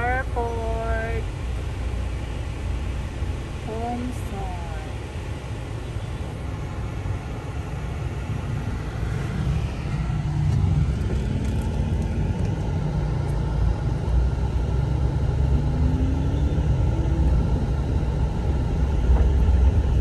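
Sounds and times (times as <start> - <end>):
van engine and road rumble: 0.0 - 20.0.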